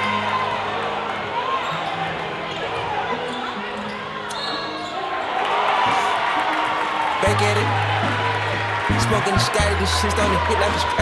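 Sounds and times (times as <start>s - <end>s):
crowd chatter: 0.0s - 11.0s
bass line of background music: 7.2s - 11.0s.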